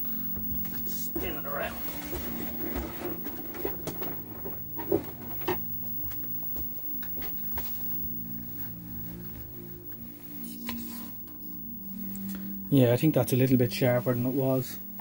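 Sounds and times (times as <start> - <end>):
music from television speaker: 0.0 - 13.0.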